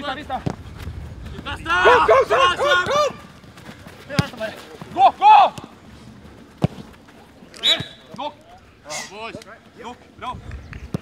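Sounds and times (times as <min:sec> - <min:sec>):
footballers shouting: 0:01.2 - 0:05.8.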